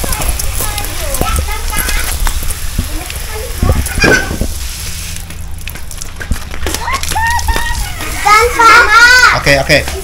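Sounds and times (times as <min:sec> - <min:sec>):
shower water splashing on pebbles: 0:00.0 - 0:10.0
child calling: 0:03.3 - 0:04.4, 0:06.8 - 0:09.4.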